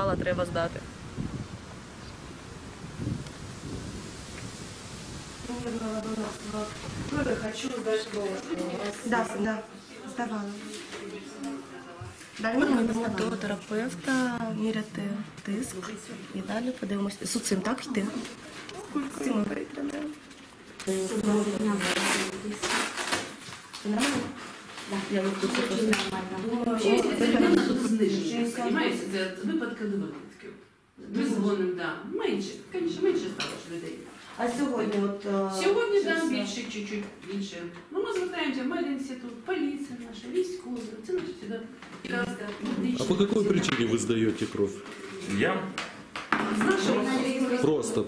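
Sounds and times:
wind buffeting microphone: 0.0 - 7.7.

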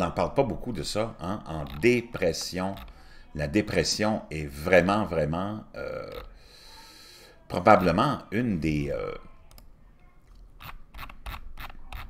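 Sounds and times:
mouse scroll wheel clicking: 2.4 - 3.0, 10.3 - 12.0.

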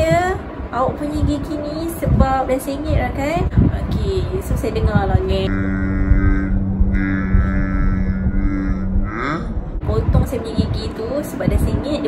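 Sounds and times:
woman humming nasal tone: 5.5 - 9.6.

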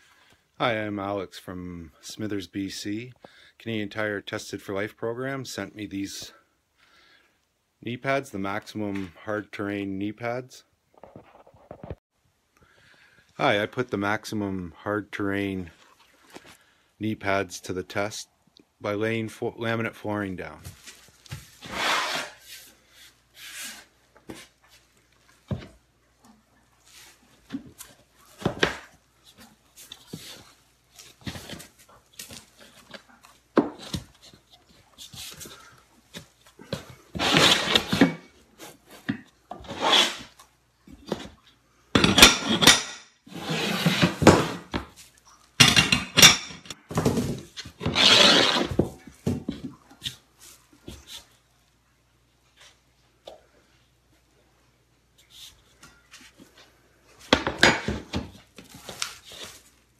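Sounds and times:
planks scraping over floor: 20.7 - 24.8, 26.8 - 40.4, 42.0 - 45.0, 46.2 - 50.2.

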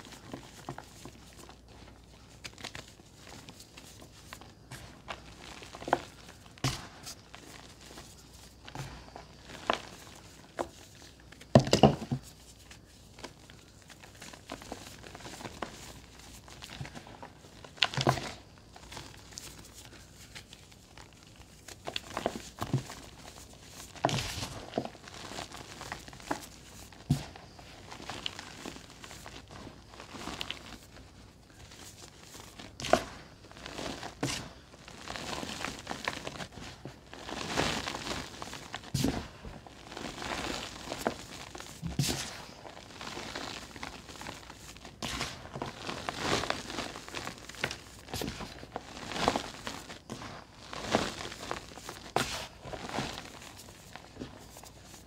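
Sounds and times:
dry powder crumbling: 0.0 - 55.0
powder cylinders crunching: 0.0 - 55.0.

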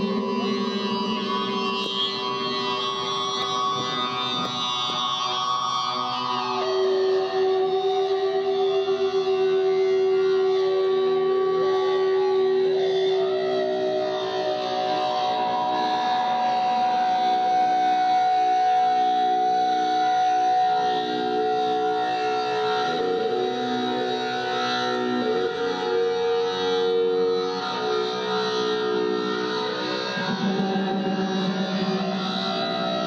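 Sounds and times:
droning live music: 0.0 - 33.0.

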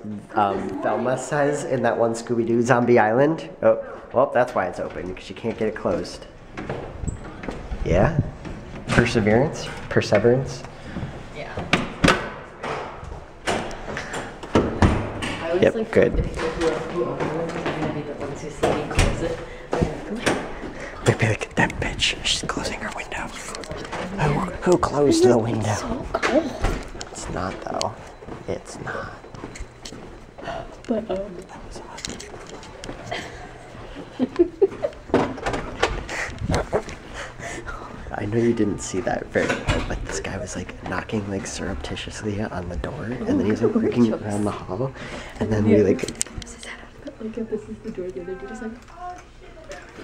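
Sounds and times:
person laughing breathily: 36.0 - 38.0.

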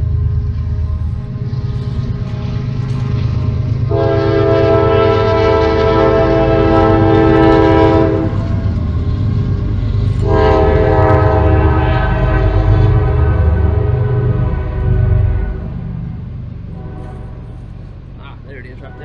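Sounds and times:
train rumble: 0.0 - 19.0
locomotive air horn blasts: 3.9 - 8.8, 10.1 - 15.9, 16.7 - 17.6.

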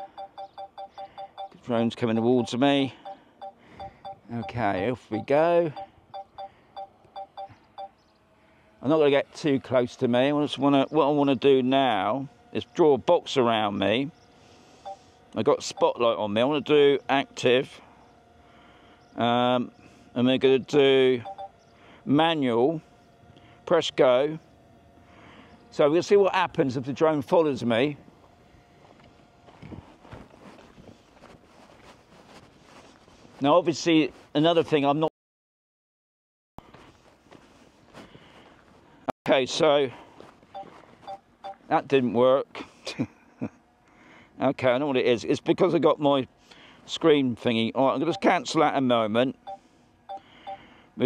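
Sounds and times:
electronic beeps from remote controller: 0.0 - 1.6, 2.2 - 8.0, 21.2 - 21.5, 49.4 - 50.6
faint steady tone: 0.0 - 8.6, 14.1 - 16.1, 20.8 - 23.6, 49.4 - 50.8
footsteps on gravel: 28.2 - 34.8, 36.6 - 39.0, 39.9 - 41.2.

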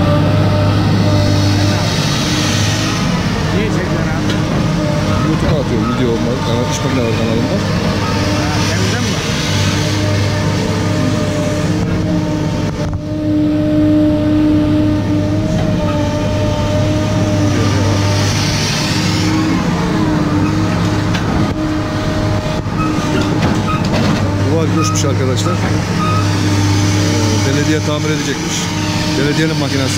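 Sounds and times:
diesel engine idling: 0.0 - 29.9.

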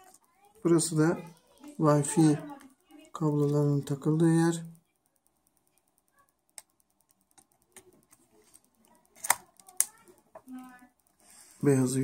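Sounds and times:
sharp clicks: 4.6 - 11.2.

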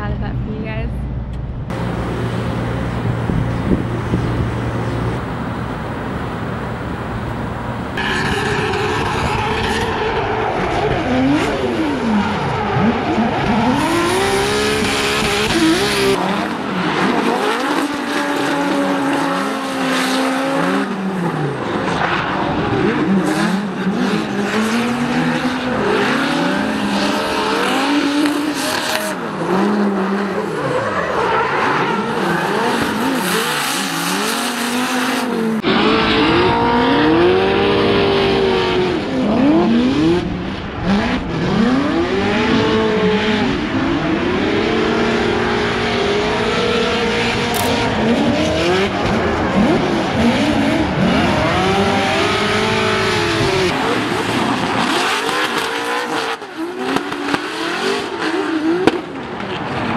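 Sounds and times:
car engines revving hard: 1.7 - 59.9.

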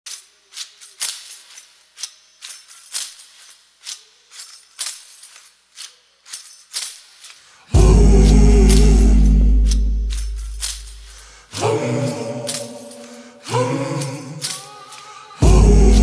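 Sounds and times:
jingly tambourine hits: 7.7 - 11.4
music with heavy deep bass: 7.8 - 11.1, 15.4 - 16.0.

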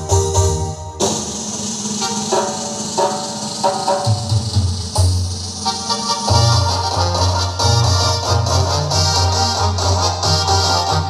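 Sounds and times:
deep bass line: 0.0 - 1.1, 6.3 - 11.0
electronic dance music: 0.0 - 4.3, 5.2 - 11.0.

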